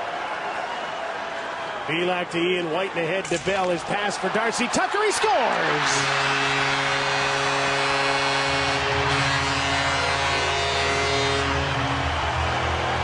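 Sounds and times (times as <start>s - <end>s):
crowd cheering: 0.0s - 13.0s
goal horn blast: 5.6s - 12.9s.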